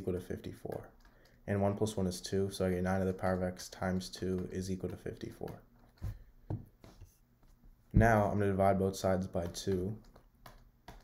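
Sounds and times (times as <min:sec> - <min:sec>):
stylus tapping on drawing tablet: 0:03.9 - 0:07.1, 0:09.2 - 0:11.0.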